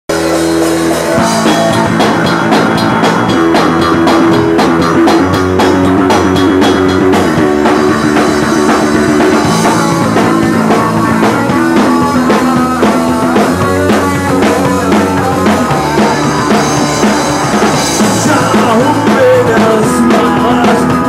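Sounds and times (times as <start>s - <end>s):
drum kit beat: 0.1s - 21.0s
electric guitar chords: 0.1s - 21.0s.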